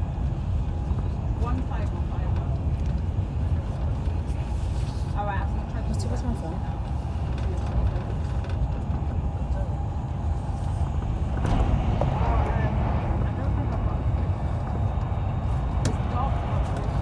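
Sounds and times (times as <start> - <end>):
train running rumble inside carriage: 0.0 - 17.0.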